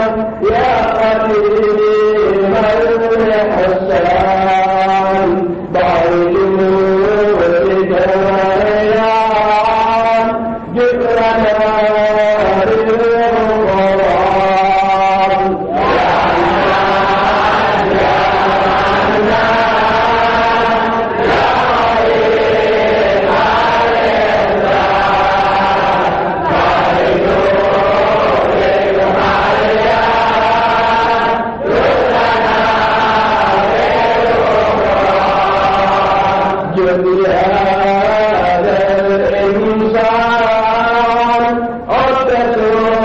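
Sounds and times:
voices chanting devotional verses: 0.0s - 43.0s.

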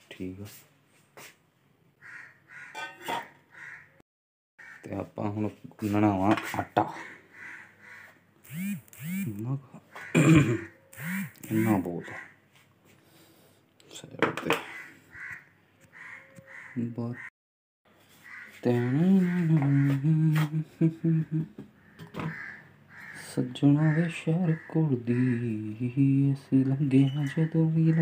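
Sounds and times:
short rising and falling calls: 8.5s - 9.5s, 10.9s - 11.9s
person clearing throat: 10.1s - 10.8s.

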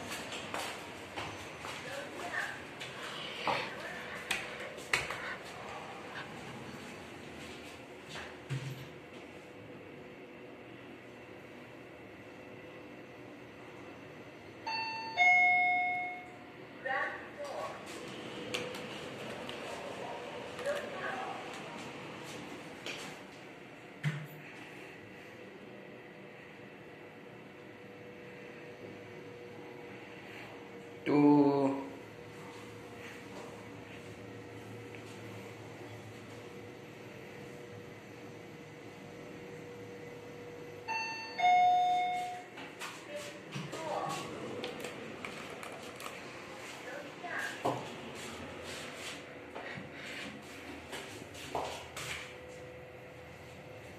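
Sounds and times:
elevator two-tone chime: 14.6s - 16.5s, 40.8s - 42.6s.

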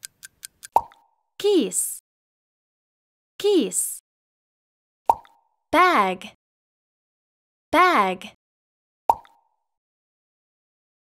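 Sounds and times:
cartoon plop sound effect: 9.1s - 9.4s.

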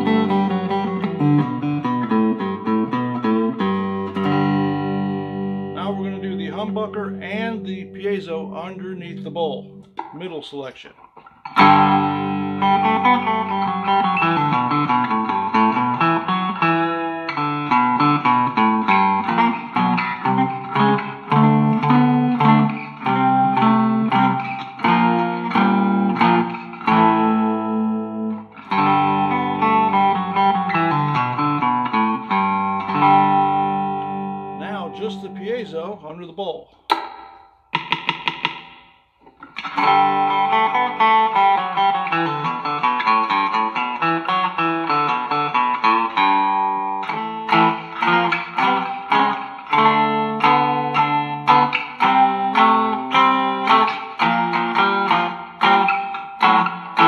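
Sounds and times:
blues guitar riff: 0.0s - 57.0s.

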